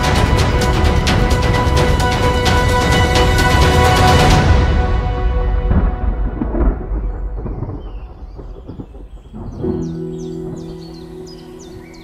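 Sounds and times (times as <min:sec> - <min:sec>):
thunder rumbling: 0:04.3 - 0:12.0
birds chirping: 0:06.6 - 0:12.0
held music chord: 0:09.6 - 0:12.0.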